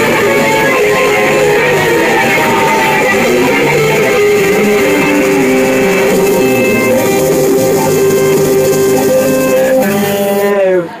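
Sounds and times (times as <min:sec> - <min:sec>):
psychedelic rock band: 0:00.0 - 0:10.6
electric guitars sustained chords: 0:00.0 - 0:11.0.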